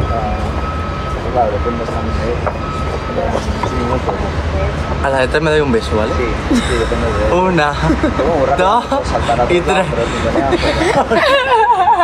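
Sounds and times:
city street traffic rumble: 0.0 - 12.0.

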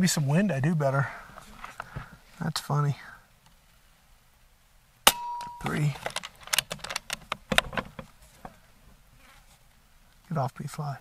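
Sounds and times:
sharp clicks and taps: 5.4 - 8.1.

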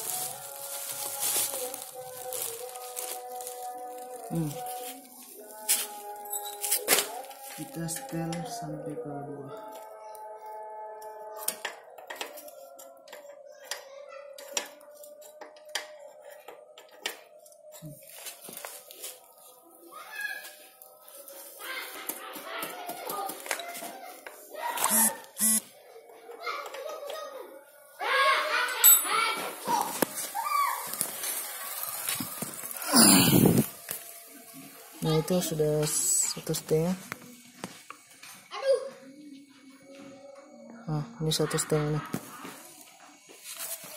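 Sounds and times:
indistinct background voices: 0.0 - 43.9.

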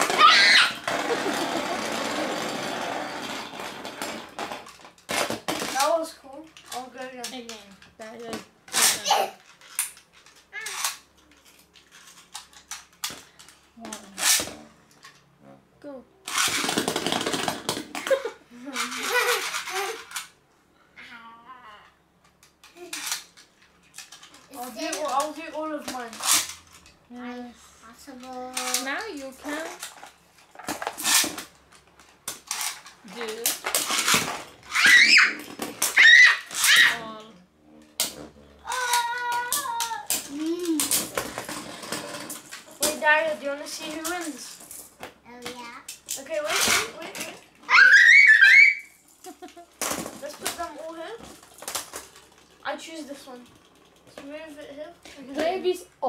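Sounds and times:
children squealing excitedly: 0.0 - 0.9, 34.7 - 37.0, 47.6 - 49.0
spinning tops clattering in plastic bin: 0.0 - 15.0, 16.3 - 20.4, 22.4 - 27.0, 28.1 - 37.3, 38.0 - 45.0, 45.8 - 55.8.

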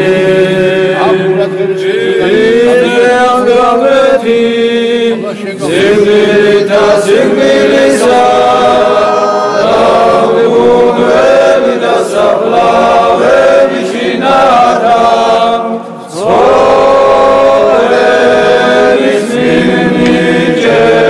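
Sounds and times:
church choir chanting a hymn: 0.0 - 21.0.

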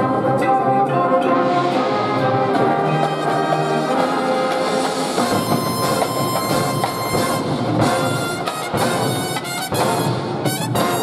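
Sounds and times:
percussion strikes: 1.2 - 11.0.

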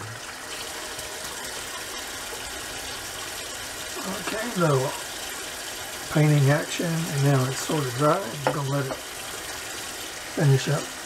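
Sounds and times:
water rushing from a sink tap: 0.0 - 11.0.

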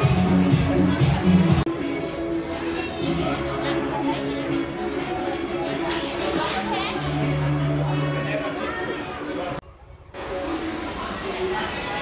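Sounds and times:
indistinct voices talking: 0.0 - 9.6.

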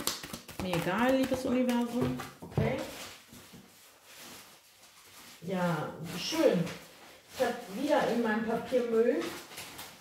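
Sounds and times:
cards rustling and tapping: 0.0 - 3.6.

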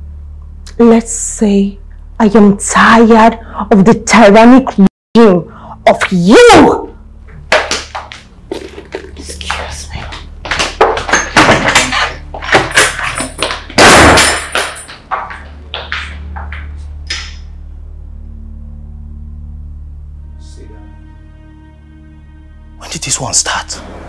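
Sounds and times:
low steady hum: 0.0 - 7.5, 11.2 - 24.0
footsteps on hard floor: 7.3 - 16.9.

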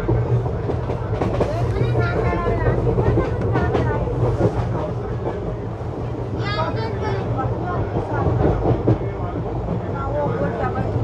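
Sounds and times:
train wheels rumbling on track: 0.0 - 11.0.

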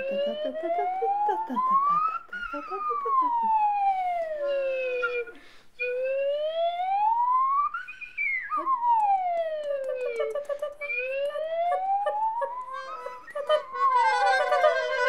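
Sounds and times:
steady held notes: 10.8 - 15.0
sliding glissando tone: 10.9 - 15.0.

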